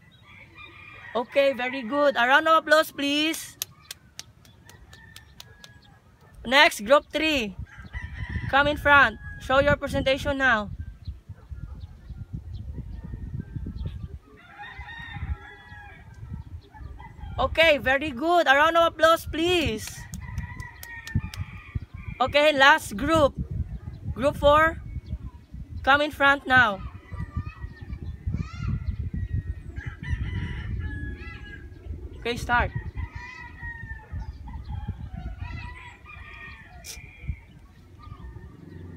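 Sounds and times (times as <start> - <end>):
rooster crowing: 0.0 - 2.2, 14.4 - 16.1
chickens calling: 0.0 - 9.7, 10.9 - 17.6, 25.0 - 38.9
wind rumble on microphone: 0.0 - 38.9
steady low rumble: 26.8 - 38.9.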